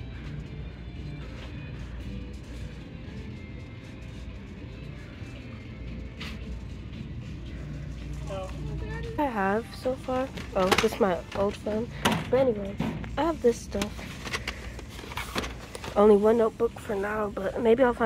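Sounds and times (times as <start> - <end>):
faint music: 0.0 - 18.0.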